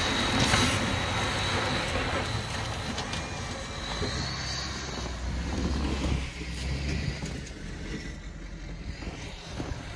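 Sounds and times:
pickup truck engine rumble: 0.0 - 9.9.

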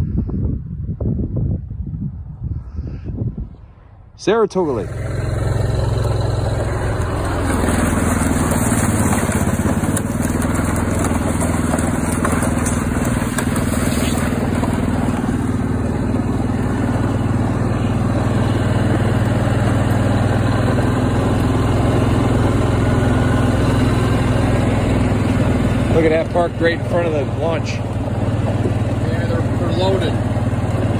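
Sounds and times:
wind noise on microphone: 0.0 - 4.2
atv engine running: 4.5 - 30.9.

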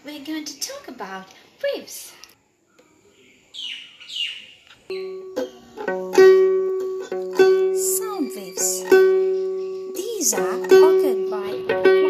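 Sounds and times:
bird chirping: 2.2 - 12.0
violin string plucked: 4.9 - 12.0.

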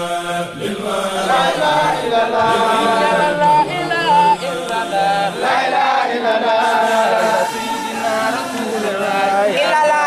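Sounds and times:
men chanting in chorus: 0.0 - 10.0.

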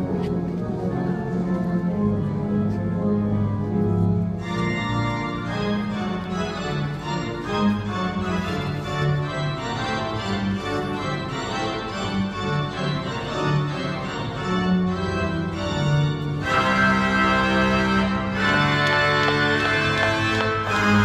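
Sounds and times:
organ music: 0.0 - 21.0.

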